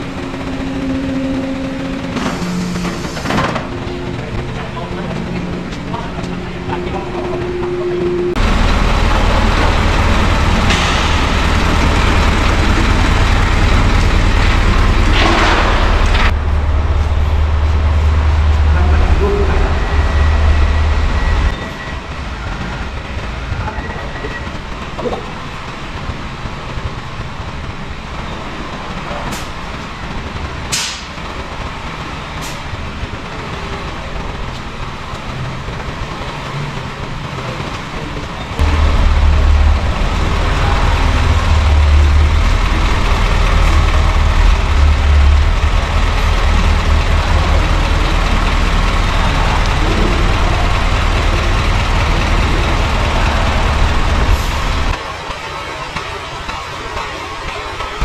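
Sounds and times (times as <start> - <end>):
diesel truck engine rumbling: 0.0 - 58.0.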